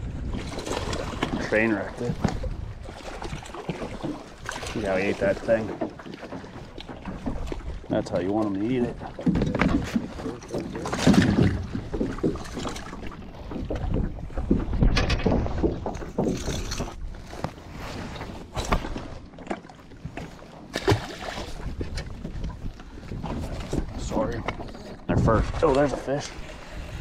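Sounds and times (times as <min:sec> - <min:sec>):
wind on microphone: 0:00.0 - 0:04.0, 0:21.4 - 0:27.0.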